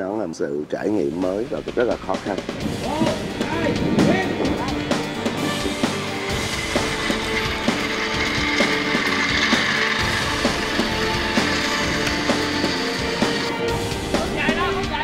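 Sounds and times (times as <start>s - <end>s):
background music with held notes: 0.0s - 15.0s.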